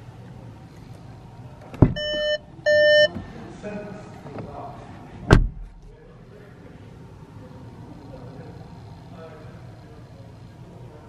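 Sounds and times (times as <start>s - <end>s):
car door unlatching thump: 1.7s - 2.2s, 5.3s - 5.9s
car warning beeps: 1.8s - 3.2s.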